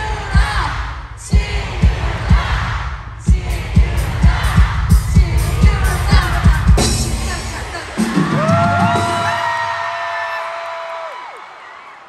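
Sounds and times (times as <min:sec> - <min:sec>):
band pounding beat: 0:00.0 - 0:09.6.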